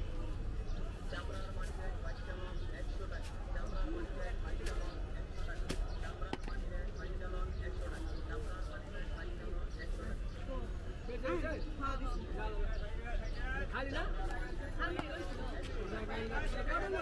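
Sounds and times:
low street rumble: 0.0 - 17.0
people talking: 0.0 - 17.0.

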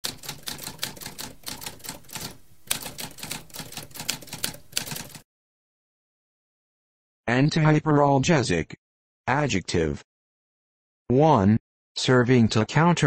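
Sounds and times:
typewriter keys clacking: 0.0 - 5.2.

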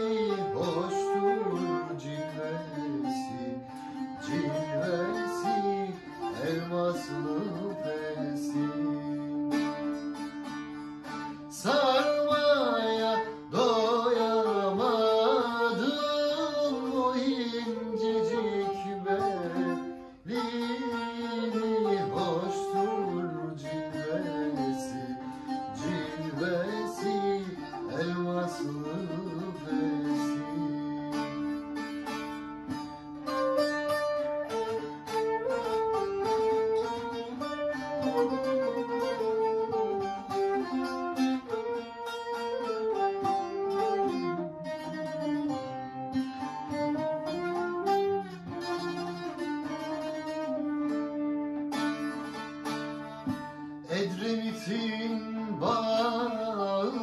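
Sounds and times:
flute melody: 0.0 - 57.0
long-necked lute picked rapidly: 0.0 - 57.0.

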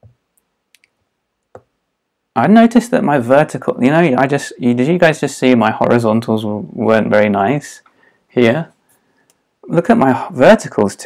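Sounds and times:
stylus tapping on tablet screen: 0.0 - 1.8.

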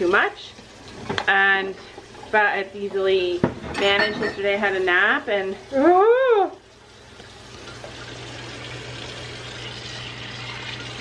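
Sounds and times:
faucet running into sink: 3.8 - 11.0.

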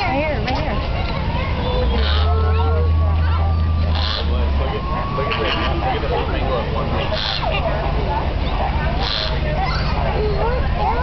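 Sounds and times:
steady low rumble: 0.0 - 11.0
flamingos and ducks calling: 1.6 - 11.0.

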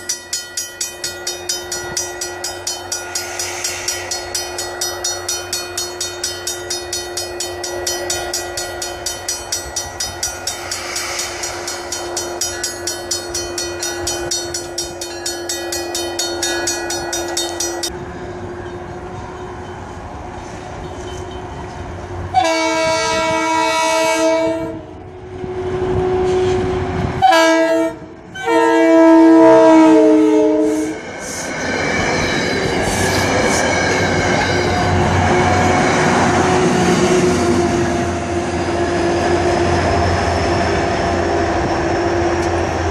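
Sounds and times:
railroad crossing bell ringing: 0.0 - 25.1, 27.2 - 41.7
train rumbling past: 0.0 - 42.9
train air horn blasts: 22.3 - 25.0, 26.0 - 31.0.

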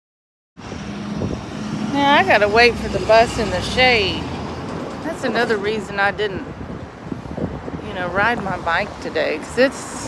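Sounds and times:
passing vehicle rumble: 0.6 - 10.0.

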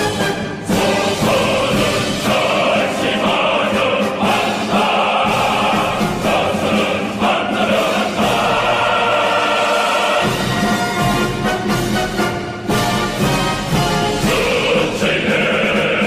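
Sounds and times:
orchestral accompaniment: 0.0 - 16.0
male choir singing: 0.1 - 11.1, 13.4 - 16.0.

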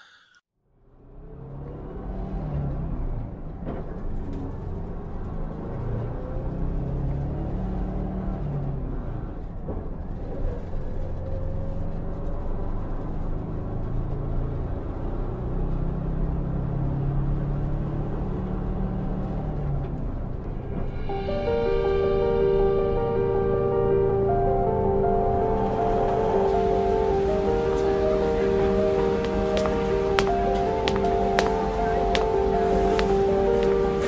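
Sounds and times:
vehicle rumble from inside: 0.9 - 34.0
soft music: 20.7 - 34.0.

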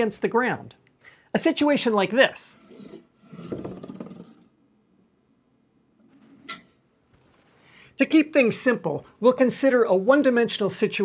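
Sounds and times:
disk rolling on tabletop: 2.6 - 4.4.

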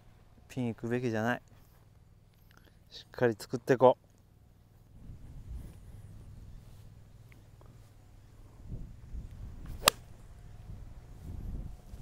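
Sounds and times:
golf club striking ball: 9.7 - 10.2.

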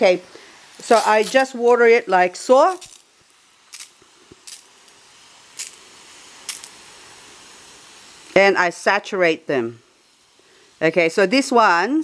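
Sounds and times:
sharp spray spurts: 0.0 - 11.3
water spray hiss: 0.0 - 12.0.

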